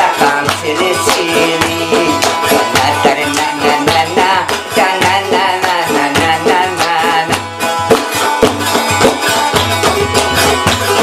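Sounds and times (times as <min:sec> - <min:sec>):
plucked lute melody: 0:00.0 - 0:11.0.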